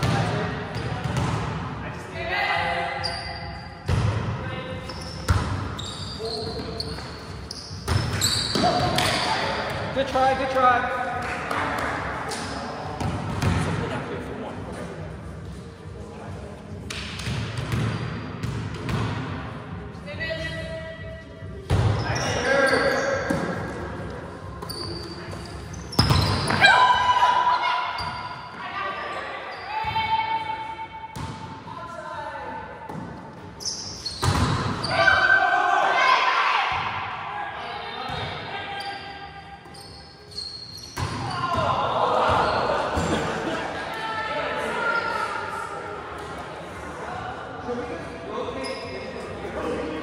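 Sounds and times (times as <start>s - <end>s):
volleyball hits in echoing gym: 0.0s - 15.1s, 16.4s - 28.8s, 29.6s - 39.0s, 39.6s - 44.0s.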